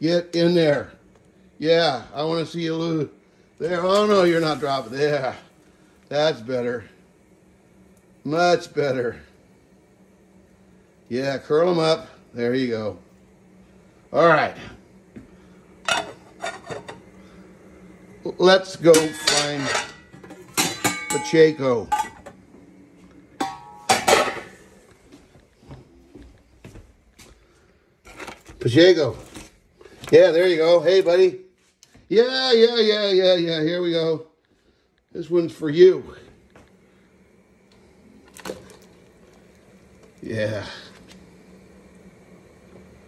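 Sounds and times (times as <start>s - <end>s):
low steady hum: 0.0s - 31.6s
kitchenware clattering: 15.8s - 17.0s, 18.8s - 22.4s, 23.4s - 24.7s
pot lid clanking on pot: 23.4s - 24.6s
pot of water simmering: 36.4s - 43.0s.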